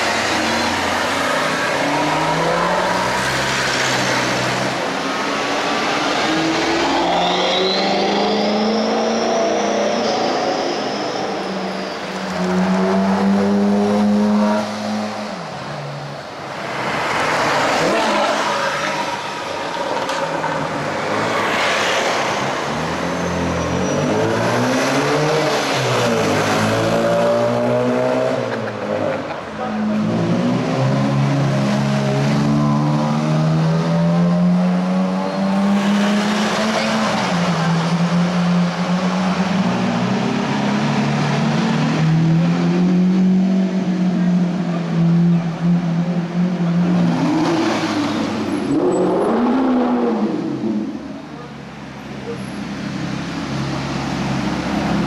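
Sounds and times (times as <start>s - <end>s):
supercar engines revving: 0.0s - 55.0s.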